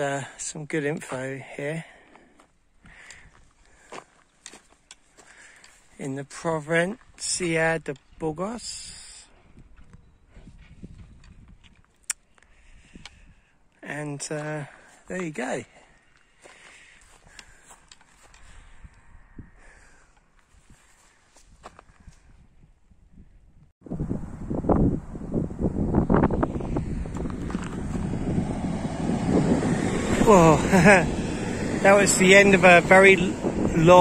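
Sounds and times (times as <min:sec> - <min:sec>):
low outdoor background: 0:00.0 - 0:34.0
faint footsteps: 0:02.0 - 0:06.0, 0:09.3 - 0:12.5, 0:15.8 - 0:19.0, 0:27.0 - 0:28.2
footsteps crunching on gravel: 0:02.0 - 0:08.2, 0:14.4 - 0:18.6, 0:20.4 - 0:21.9, 0:27.1 - 0:28.2
low rumble: 0:23.9 - 0:34.0.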